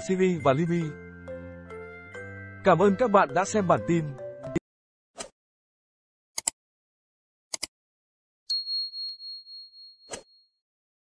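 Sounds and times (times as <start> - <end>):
high bell ding: 8.5 - 10.2.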